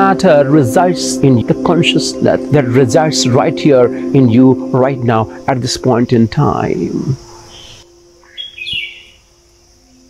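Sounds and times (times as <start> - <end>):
faint steady low tone: 0.0 - 8.3
bird chirping: 0.0 - 10.0.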